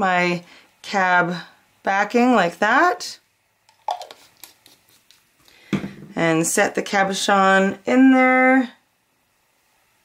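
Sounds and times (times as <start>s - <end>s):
plastic bottles knocking on table: 5.7s - 6.1s.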